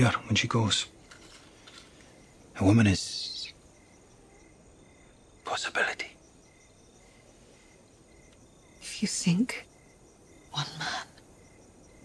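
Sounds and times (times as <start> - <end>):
faint insect chirping: 0.0 - 12.0.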